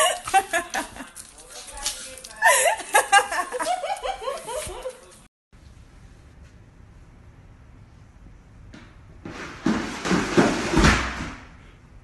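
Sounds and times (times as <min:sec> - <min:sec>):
basket scraping: 0:09.2 - 0:11.4
plastic basket tumbling down stairs: 0:09.2 - 0:11.5.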